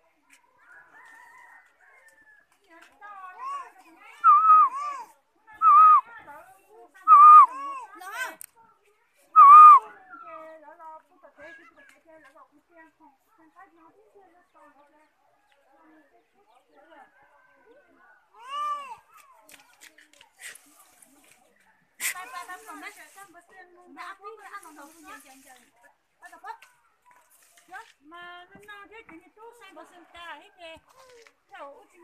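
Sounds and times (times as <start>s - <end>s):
faint distant voices: 0.0s - 32.0s.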